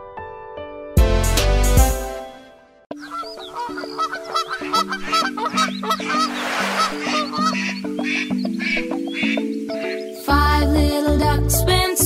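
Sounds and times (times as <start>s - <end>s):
short noisy whoosh: 6.2s - 7.3s
bouncy children's song melody: 7.2s - 12.0s.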